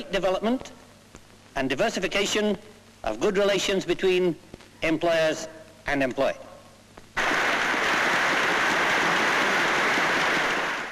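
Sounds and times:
audience applauding: 7.2s - 10.9s.

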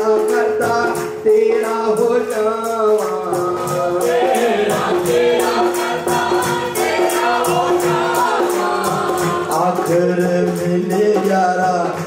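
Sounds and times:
group singing devotional song: 0.0s - 12.0s
percussion beat: 0.0s - 12.0s
woman singing into microphone: 4.7s - 9.6s.

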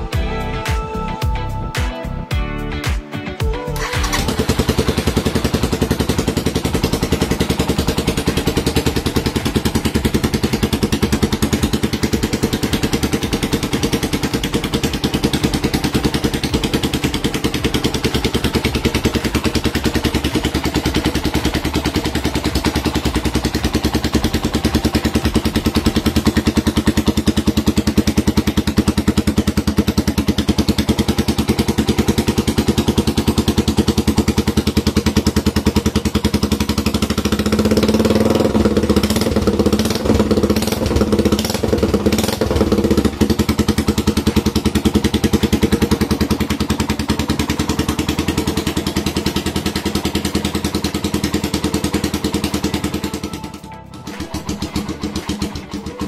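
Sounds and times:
motorcycle engine idling: 3.6s - 56.0s.

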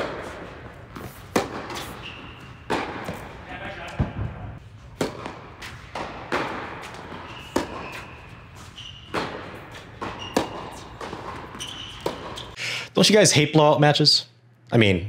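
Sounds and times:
racket hitting tennis ball: 0.0s - 12.6s
sneaker squeaks on court: 0.9s - 3.2s, 6.9s - 12.6s.

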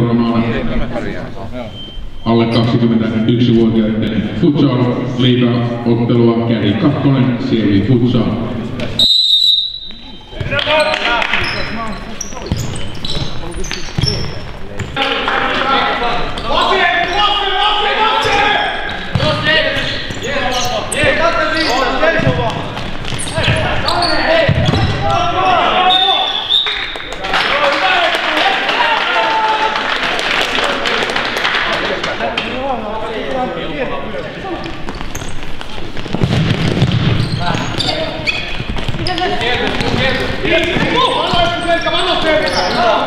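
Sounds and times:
ball kicked and bouncing: 12.4s - 15.0s, 24.4s - 25.1s, 34.7s - 41.6s
players shouting: 15.0s - 22.6s, 23.2s - 26.5s.

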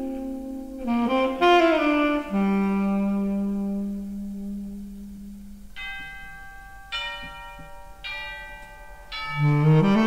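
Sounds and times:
held low note: 0.0s - 10.0s
tubular bells struck: 5.8s - 10.0s.

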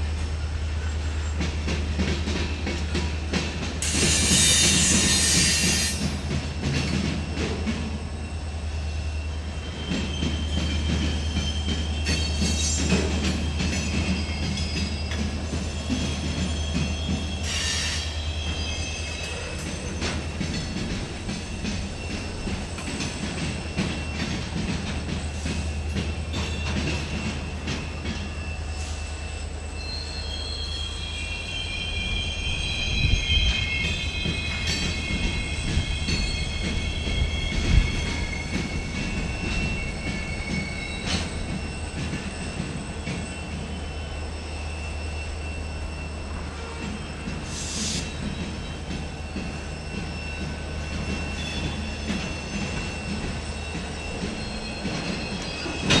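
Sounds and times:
freight train rumbling past: 0.0s - 56.0s
train wheels squealing: 0.0s - 56.0s.

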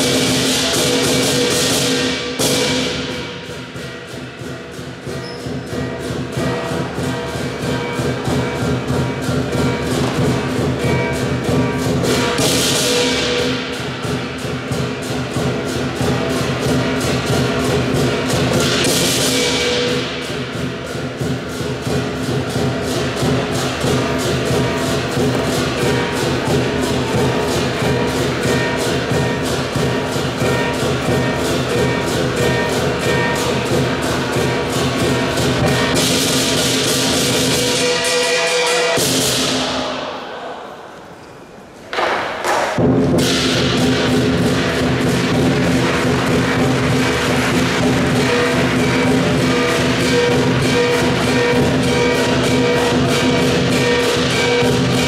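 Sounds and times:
large drum beaten fast: 0.0s - 40.1s, 42.4s - 55.0s
loud cymbal crashes: 0.0s - 40.4s, 42.7s - 55.0s
cymbals and gong: 0.0s - 40.8s, 42.4s - 55.0s.

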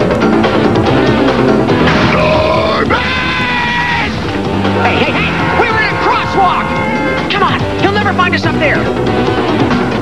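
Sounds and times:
background music: 0.0s - 10.0s
cartoon monster growling: 1.9s - 4.2s.

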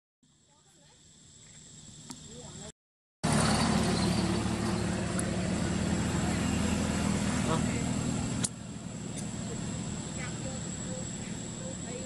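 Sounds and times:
vehicle engine running: 1.4s - 12.0s.

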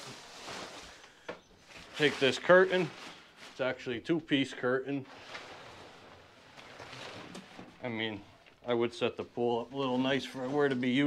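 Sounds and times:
shower curtain rustling: 0.0s - 3.9s, 5.0s - 8.0s.

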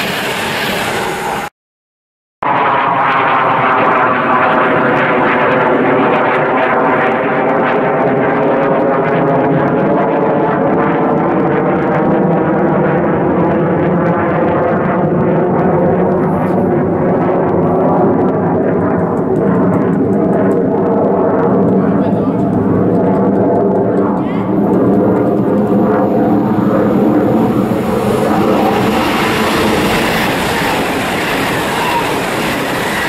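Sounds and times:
electric train whine: 0.0s - 1.5s, 22.2s - 33.0s.

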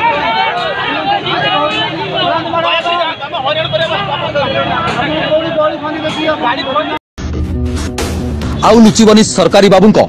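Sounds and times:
people talking over one another: 0.0s - 7.0s
road traffic: 0.0s - 7.0s.

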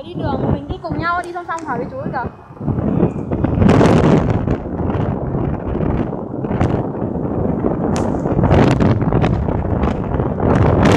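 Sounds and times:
motorbike rumble: 0.0s - 10.9s
wind buffeting microphone: 0.0s - 10.9s.

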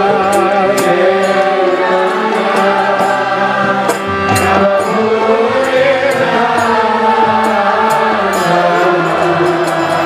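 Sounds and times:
devotional chanting: 0.0s - 10.0s
hand drum: 0.0s - 10.0s
harmonium chords: 0.0s - 10.0s.

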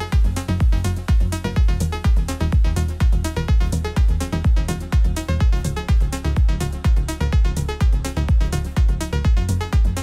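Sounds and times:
kick drum: 0.0s - 10.0s.

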